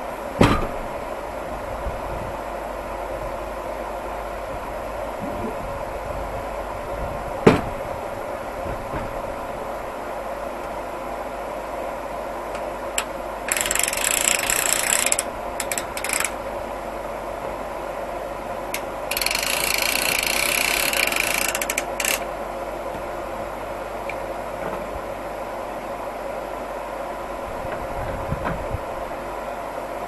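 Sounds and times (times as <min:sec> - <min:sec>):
sawmill power unit humming: 0:00.0 - 0:30.0.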